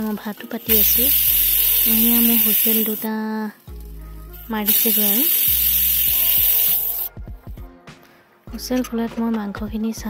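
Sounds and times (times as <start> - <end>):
pressure cooker steam hiss: 0.0 - 3.1, 4.4 - 7.1.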